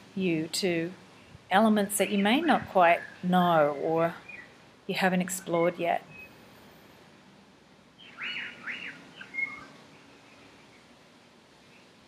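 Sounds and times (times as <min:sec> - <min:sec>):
faint background hiss: 0:00.0 - 0:12.0
bird chirping: 0:01.9 - 0:04.6, 0:08.0 - 0:10.9.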